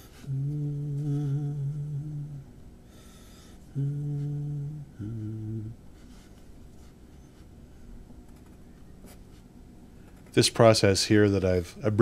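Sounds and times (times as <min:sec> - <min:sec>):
man humming low notes: 0:00.0 - 0:02.6, 0:03.6 - 0:05.9.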